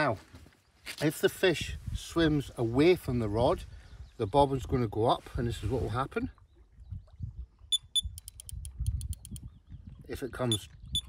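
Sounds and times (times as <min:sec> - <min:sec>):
fishing bite alarm beeping: 0:07.7 - 0:08.5, 0:10.5 - 0:11.0.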